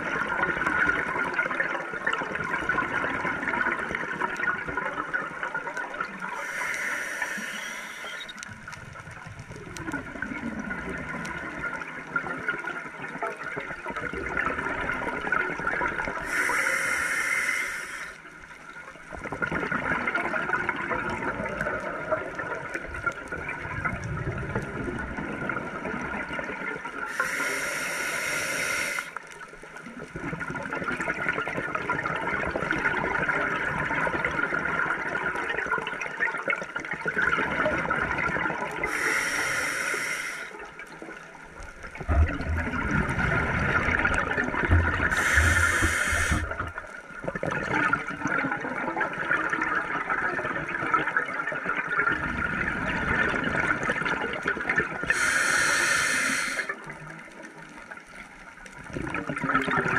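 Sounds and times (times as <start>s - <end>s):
exhaled bubbles gurgling: 0.0s - 59.9s
regulator hiss on inhale: 6.3s - 8.4s, 16.2s - 18.2s, 27.1s - 29.2s, 38.8s - 40.7s, 45.1s - 46.8s, 55.1s - 56.8s.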